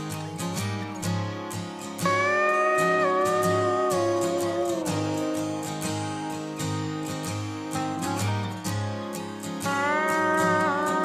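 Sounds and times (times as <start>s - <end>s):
strummed acoustic guitar: 0.0s - 11.0s
steel guitar sliding chord: 2.0s - 5.9s, 9.6s - 11.0s.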